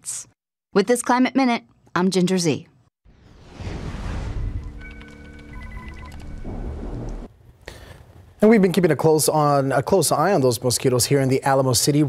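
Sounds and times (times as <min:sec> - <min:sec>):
whoosh into low rumble: 0:03.1 - 0:07.4
short high beeps: 0:04.8 - 0:07.2.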